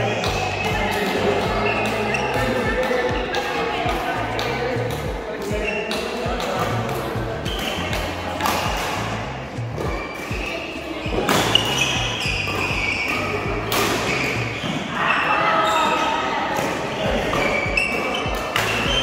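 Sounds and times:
background music with bass line: 0.0s - 14.6s, 17.1s - 19.0s
voices: 0.0s - 19.0s
rackets striking shuttlecock: 0.1s - 14.8s, 16.6s - 19.0s.

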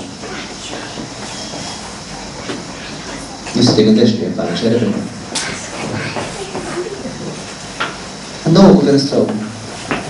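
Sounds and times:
background hiss: 0.0s - 10.0s.

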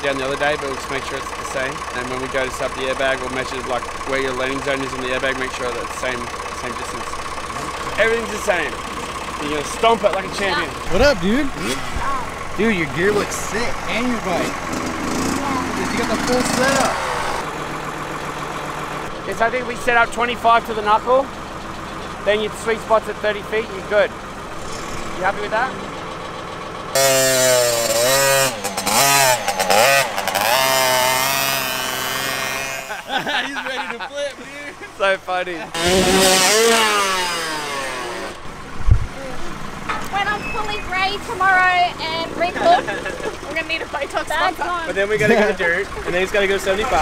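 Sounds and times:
dirt bike engine revving: 0.0s - 20.3s, 23.4s - 25.9s, 26.9s - 47.0s
motor running steadily: 0.0s - 47.0s.

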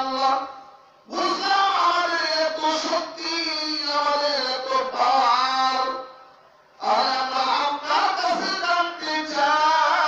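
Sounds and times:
man chanting: 0.0s - 6.2s, 6.8s - 10.0s.

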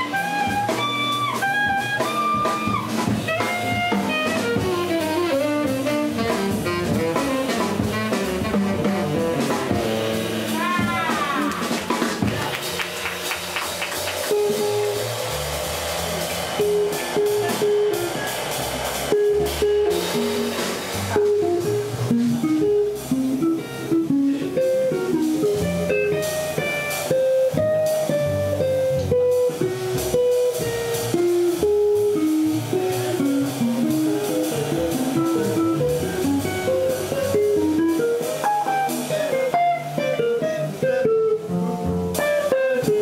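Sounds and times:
drums with cymbals: 0.0s - 43.0s
upright bass: 0.0s - 43.0s
electric guitar solo: 31.8s - 41.6s.

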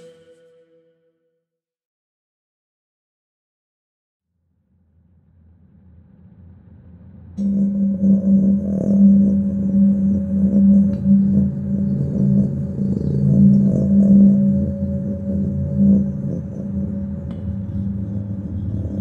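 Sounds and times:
sustained wavering tone: 0.0s - 1.1s, 7.4s - 19.0s
low drone: 5.2s - 19.0s.

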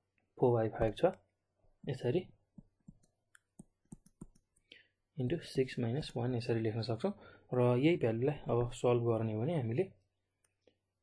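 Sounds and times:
stylus tapping on touchscreen: 2.4s - 4.6s.

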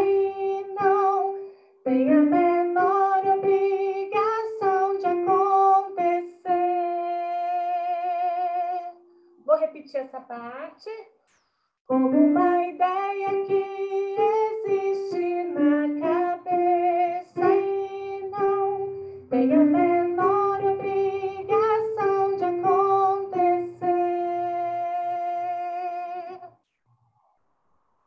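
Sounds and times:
woman singing unaccompanied: 0.0s - 9.0s, 11.9s - 26.4s.

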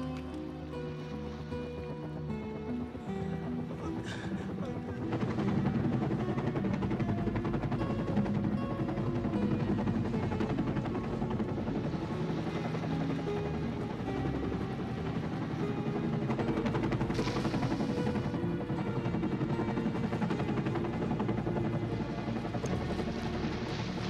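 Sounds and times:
music: 0.0s - 24.0s
helicopter rotor chopping: 0.3s - 24.0s.

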